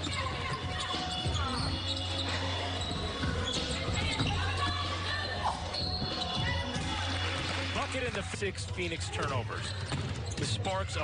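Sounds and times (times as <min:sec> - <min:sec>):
sneakers squeaking: 0:00.0 - 0:11.0.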